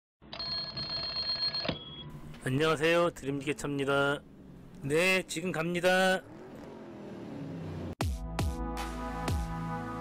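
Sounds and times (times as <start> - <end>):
electronic ringing tone: 0.3 - 2.1.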